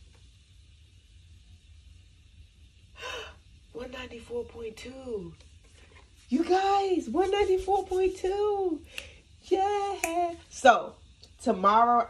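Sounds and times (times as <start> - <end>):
low room hum: 0.0 - 12.0
woman gasping: 3.0 - 3.4
person speaking: 6.3 - 8.8.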